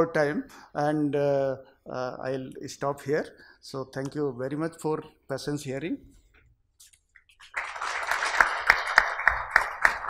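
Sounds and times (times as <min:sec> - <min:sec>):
audience applauding: 0:07.4 - 0:10.0
sharp individual claps: 0:07.4 - 0:10.0.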